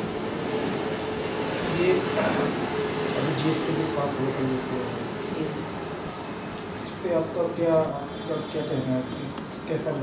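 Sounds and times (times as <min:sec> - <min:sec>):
steady mechanical hum: 0:00.0 - 0:10.0.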